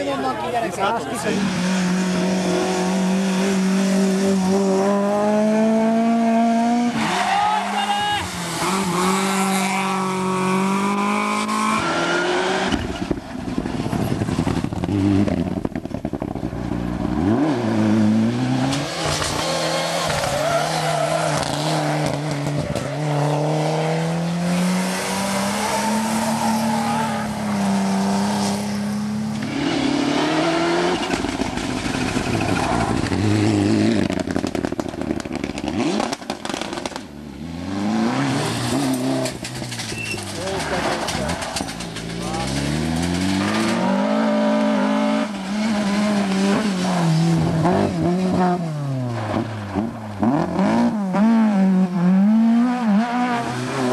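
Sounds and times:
rally car engines revving past: 1.1 - 53.9.

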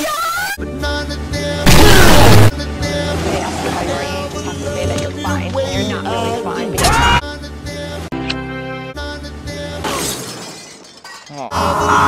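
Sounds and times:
loud shattering crash: 1.7 - 2.5, 9.9 - 11.3.

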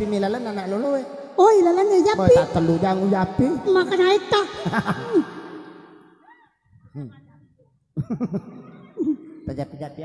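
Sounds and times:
person speaking through microphone: 0.0 - 5.3.

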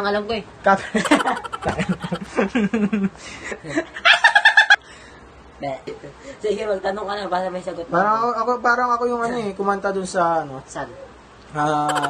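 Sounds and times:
man laughing: 1.0 - 2.4.

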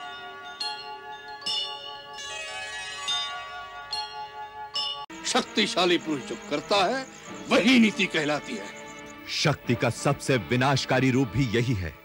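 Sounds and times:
bell-like chime jingle: 0.0 - 5.1.

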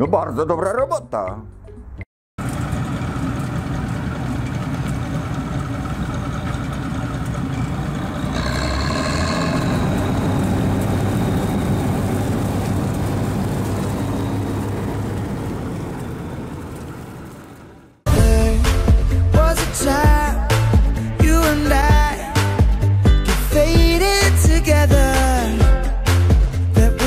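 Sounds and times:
combine harvester running: 2.4 - 18.0.

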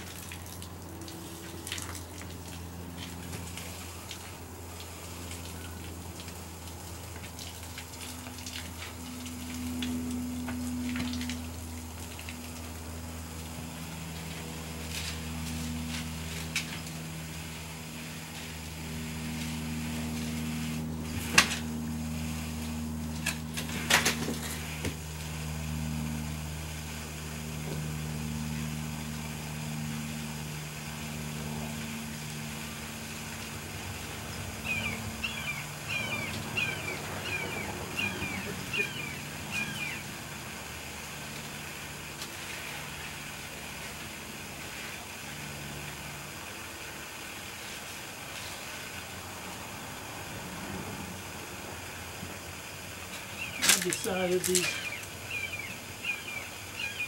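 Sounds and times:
low steady hum: 0.0 - 57.0
bird chirping: 34.6 - 40.1, 53.4 - 57.0.

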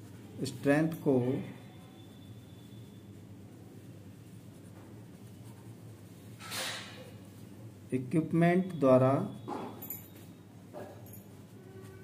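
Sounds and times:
low steady hum: 0.0 - 6.4.

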